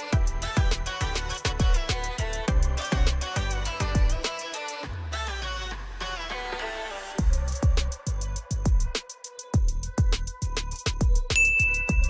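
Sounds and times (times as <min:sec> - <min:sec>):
electronic music with a beat: 0:00.0 - 0:12.0.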